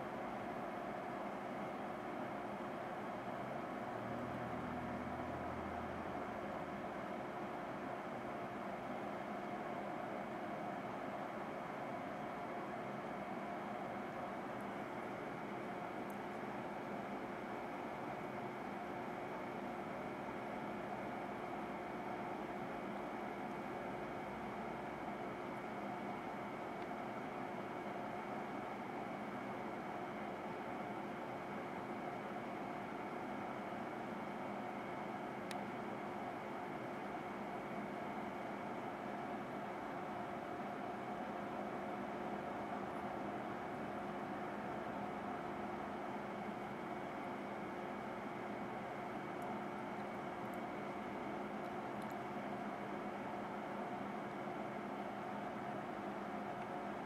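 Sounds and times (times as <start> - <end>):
oven humming: 0.0 - 57.0
faint tick: 35.5 - 35.7, 56.6 - 56.8.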